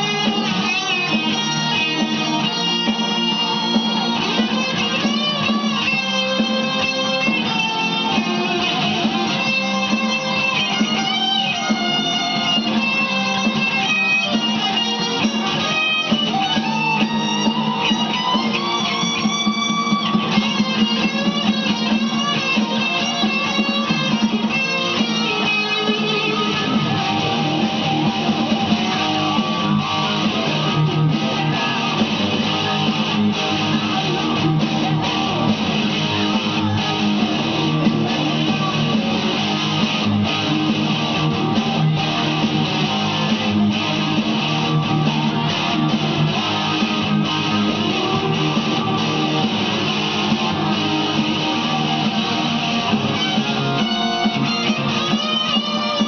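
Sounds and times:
electric guitar lead: 0:00.0 - 0:56.0
rock band backing: 0:00.0 - 0:56.0.

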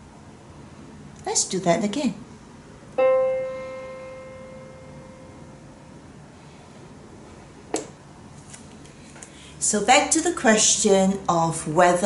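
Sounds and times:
digital piano note: 0:03.0 - 0:05.7.

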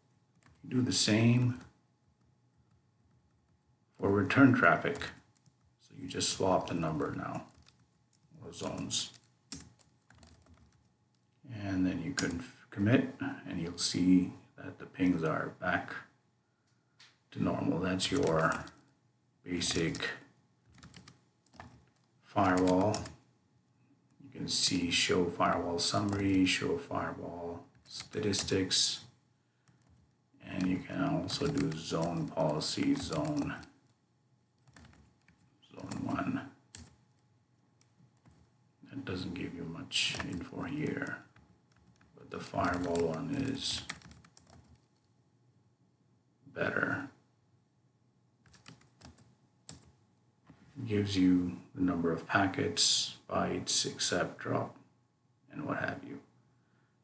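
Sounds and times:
typing on a keyboard: 0:00.3 - 0:00.7, 0:06.7 - 0:10.9, 0:18.0 - 0:18.9, 0:20.7 - 0:23.2, 0:26.0 - 0:26.4, 0:29.7 - 0:30.1, 0:30.7 - 0:34.0, 0:34.6 - 0:36.1, 0:36.7 - 0:37.0, 0:38.2 - 0:38.5, 0:40.1 - 0:40.4, 0:41.0 - 0:45.1, 0:48.4 - 0:49.9.

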